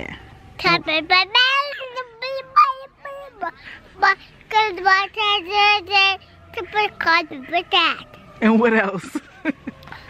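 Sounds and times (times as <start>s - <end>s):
child singing high notes: 0.8s - 8.0s.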